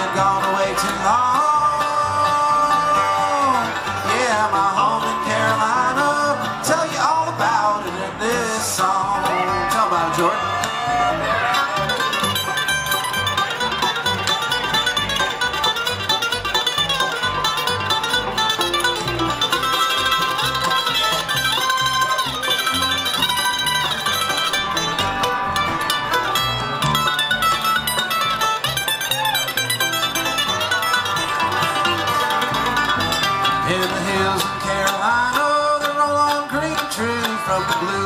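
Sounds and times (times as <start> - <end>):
acoustic guitar: 0.0 - 38.0
banjo: 0.0 - 38.0
mandolin solo: 0.0 - 38.0
upright bass: 0.0 - 38.0.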